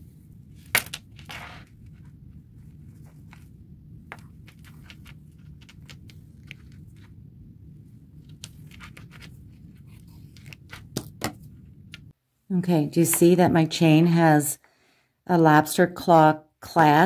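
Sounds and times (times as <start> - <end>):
low steady hum: 0.0 - 14.5.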